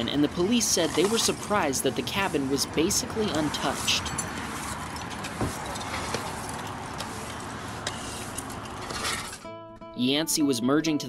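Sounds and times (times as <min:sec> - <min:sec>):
road and vehicle noise: 0:00.0 - 0:09.5.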